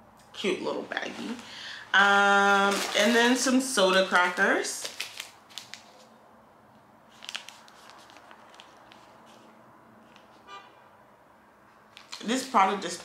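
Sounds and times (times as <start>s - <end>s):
plastic wrapper crinkling: 2.2s - 6.1s, 7.1s - 9.4s, 11.9s - 13.0s.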